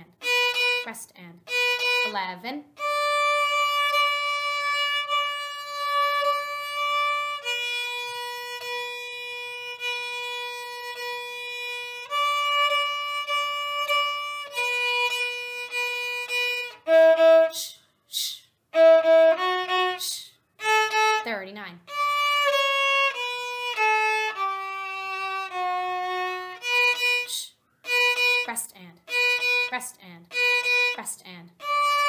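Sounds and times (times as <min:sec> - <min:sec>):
bowed violin notes: 0:00.0 - 0:32.0.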